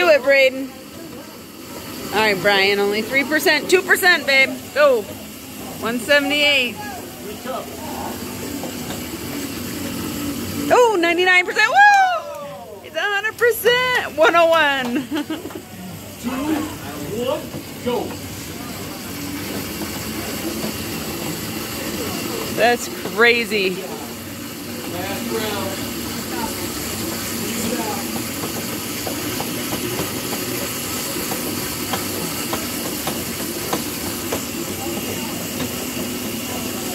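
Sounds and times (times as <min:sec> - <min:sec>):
arm ergometers rushing: 0:00.0 - 0:36.9
exercise machines whirring: 0:00.0 - 0:36.9
people talking in background: 0:00.0 - 0:36.9.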